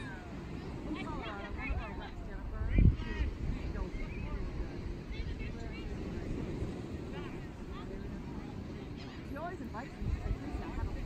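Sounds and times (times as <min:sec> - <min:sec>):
faint crowd chatter: 0:00.0 - 0:11.0
surf: 0:00.0 - 0:11.0
wind: 0:00.0 - 0:11.0.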